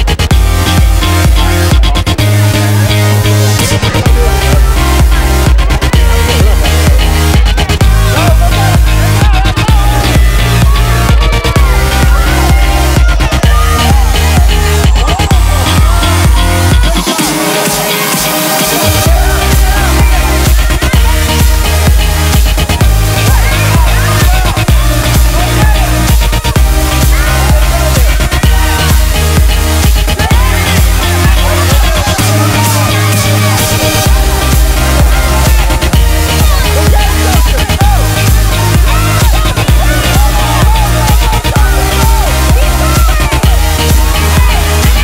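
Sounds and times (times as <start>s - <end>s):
electronic dance music: 0.0s - 45.0s
rising synth sweep: 0.0s - 45.0s.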